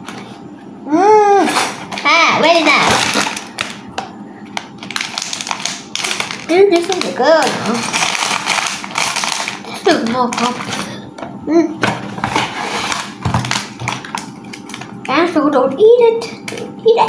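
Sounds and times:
plastic bag crinkling and rattling: 0:01.6 - 0:03.9, 0:04.5 - 0:11.0, 0:12.2 - 0:15.2.

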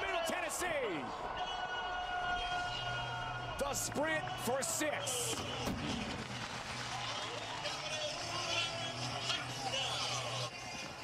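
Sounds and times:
crowd and players' voices: 0:00.0 - 0:11.0.

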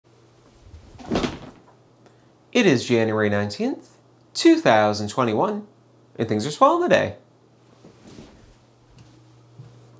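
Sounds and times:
office chair thump and rustle: 0:00.7 - 0:01.8
soft shuffle: 0:07.6 - 0:09.9.

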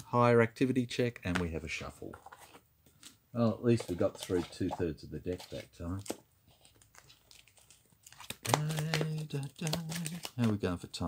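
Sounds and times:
soft crinkling: 0:02.0 - 0:10.7
playing cards shuffling: 0:03.7 - 0:10.6.

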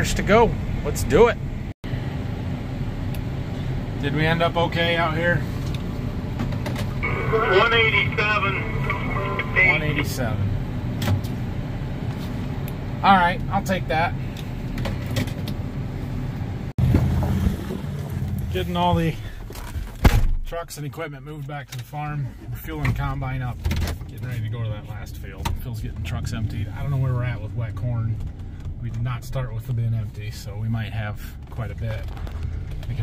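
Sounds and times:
tractor and combine rumbling: 0:00.0 - 0:11.6, 0:16.8 - 0:20.0.

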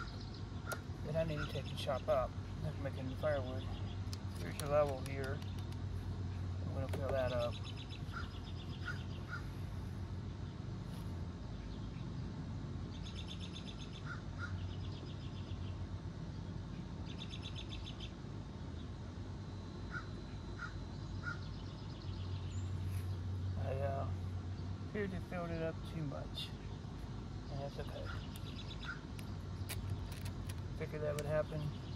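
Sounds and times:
birds calling: 0:00.0 - 0:10.6, 0:12.9 - 0:15.8, 0:19.8 - 0:31.9
low steady hum: 0:00.0 - 0:31.9
rapid trilled bird call: 0:19.9 - 0:22.7.

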